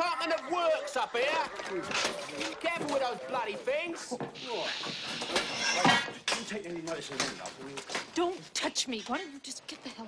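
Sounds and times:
people shouting: 0.0 - 3.0.

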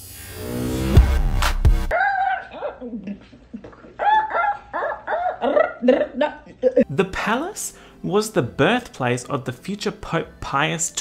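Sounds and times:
woman shrieking: 1.9 - 3.0.

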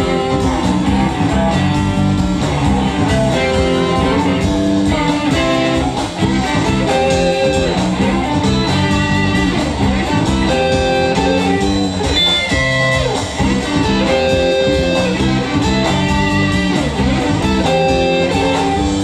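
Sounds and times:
drum kit: 0.0 - 19.0
electric bass: 0.0 - 19.0
electric guitars: 0.0 - 19.0.

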